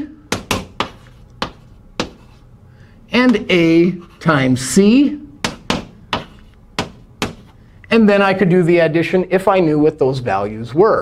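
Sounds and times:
chalk tapping on chalkboard: 0.3s - 2.4s, 3.2s - 4.2s, 5.4s - 7.6s.

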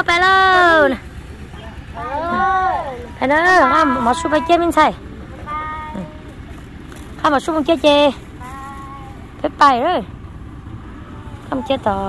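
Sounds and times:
high voice calling out: 2.0s - 6.3s, 8.4s - 9.4s.

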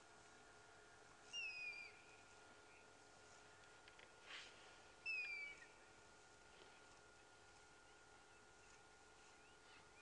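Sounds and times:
faint steady high hum: 0.0s - 10.0s
soft rush of noise: 0.0s - 10.0s
high whistled animal call: 1.3s - 2.0s, 5.0s - 5.7s.

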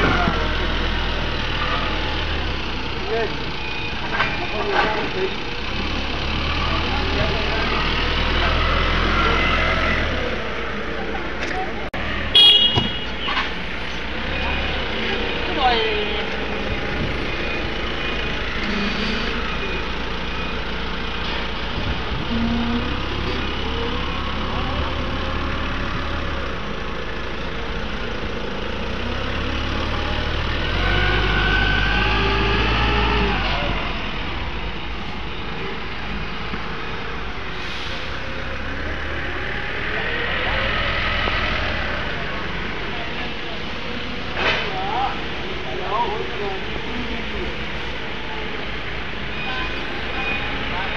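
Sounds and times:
people's voices: 0.0s - 20.9s, 35.4s - 50.9s.

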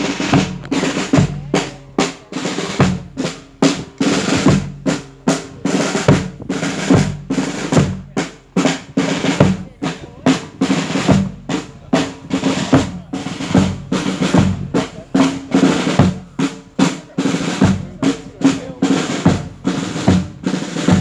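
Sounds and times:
marching snare and bass drums: 0.0s - 21.0s.

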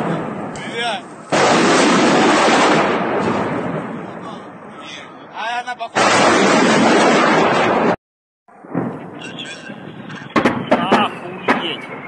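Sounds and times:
steady background noise: 0.0s - 7.8s, 8.5s - 12.0s
gunshots: 1.3s - 3.9s, 6.0s - 8.0s, 10.2s - 12.0s.

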